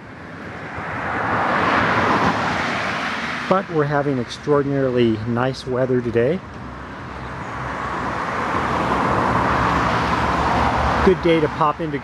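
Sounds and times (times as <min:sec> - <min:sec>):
car passing: 0:00.0 - 0:12.0.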